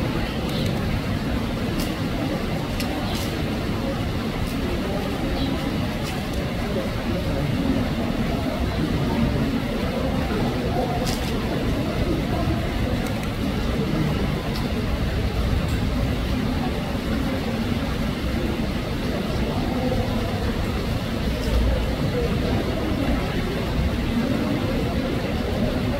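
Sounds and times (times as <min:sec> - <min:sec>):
crowd chatter: 0:00.0 - 0:25.9.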